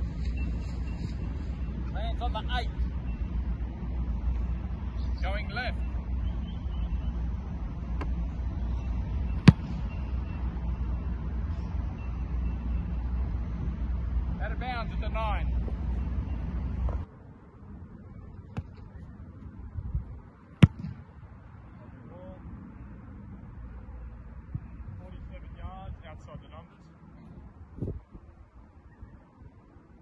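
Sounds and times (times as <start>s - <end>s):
outdoor background noise: 0.0s - 30.0s
foot kicking a football: 9.4s - 9.9s, 20.6s - 21.0s.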